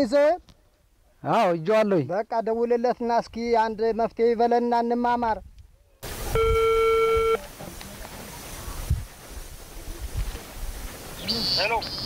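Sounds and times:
phone beep: 6.3s - 7.4s
wind rumble on microphone: 8.2s - 11.2s.

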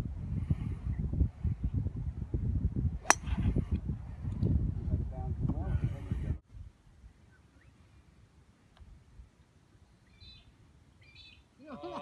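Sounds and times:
wind buffeting microphone: 0.0s - 6.8s
golf club striking ball: 3.0s - 3.4s.

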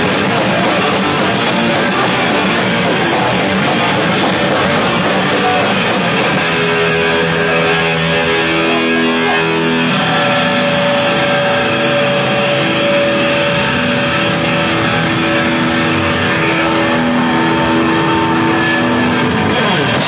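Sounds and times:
dense wash of noise: 0.0s - 20.0s
distorted electric guitars: 0.0s - 20.0s.

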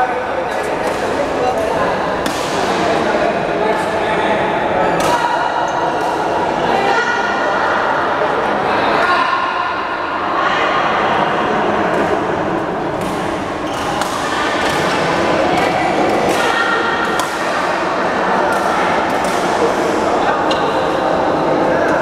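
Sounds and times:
racket striking shuttlecock: 0.8s - 2.8s, 13.0s - 15.0s, 15.6s - 17.5s, 18.5s - 19.6s.

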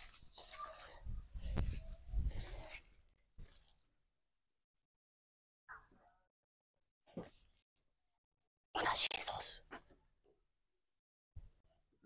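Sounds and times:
person whispering: 8.8s - 9.8s.

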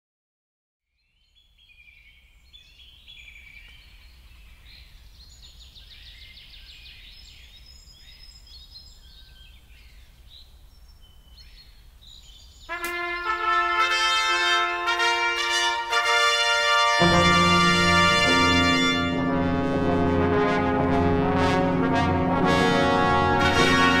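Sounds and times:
birds chirping and trilling: 1.0s - 13.7s
low outdoor rumble: 17.3s - 24.0s.

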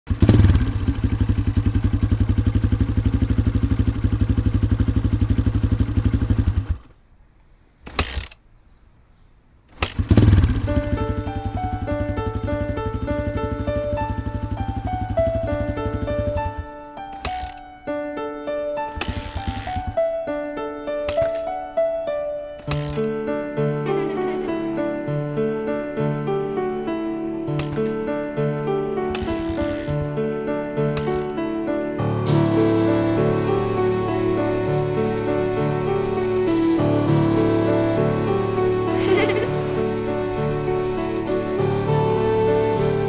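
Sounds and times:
small motorcycle engine running: 0.1s - 7.0s, 9.8s - 17.6s, 18.9s - 20.0s, 22.6s - 23.1s, 23.9s - 25.0s, 27.6s - 28.0s, 29.0s - 30.2s, 30.8s - 31.4s, 32.1s - 43.0s
engine clicks: 9.7s - 10.5s, 16.2s - 17.7s, 18.9s - 20.0s, 21.0s - 21.5s, 27.6s - 28.0s, 29.1s - 30.1s, 30.8s - 31.4s
stepped note melody: 32.1s - 42.5s.

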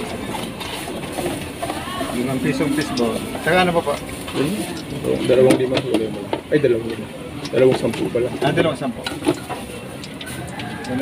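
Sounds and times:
people talking: 0.0s - 9.9s.

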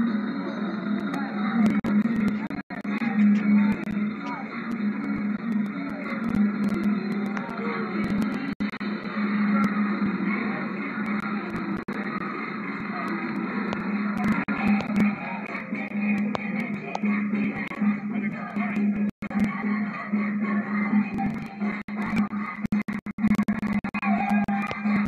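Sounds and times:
parade music from tv speaker: 0.0s - 25.0s
voices on television: 0.0s - 25.0s.

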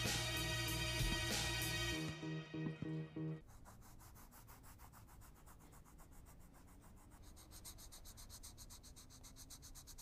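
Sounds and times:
music: 0.0s - 3.4s
pencil scratching on paper: 3.4s - 10.0s.

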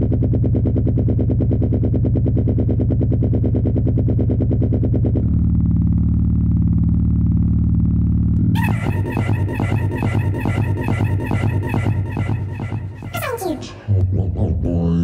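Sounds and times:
pulsing synthesized drone: 0.0s - 15.0s
steady low hum: 0.0s - 15.0s.

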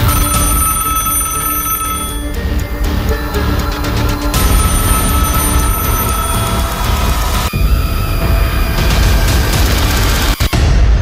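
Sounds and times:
old telephone ringing: 0.0s - 10.4s
background music: 0.0s - 11.0s.

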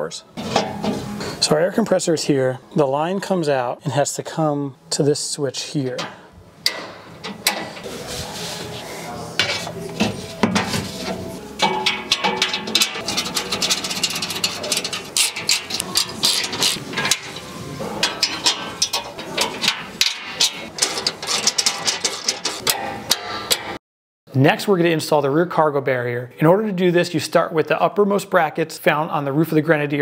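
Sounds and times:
metal shelving clicks and knocks: 0.4s - 1.1s, 5.9s - 7.9s, 9.4s - 23.8s.

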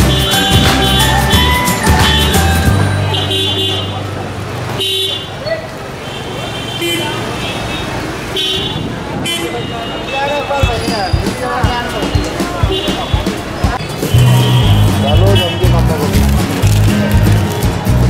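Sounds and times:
vehicle horns tooting: 0.0s - 16.0s
crowd chatter: 0.0s - 18.0s
vehicle engines: 0.0s - 18.0s.

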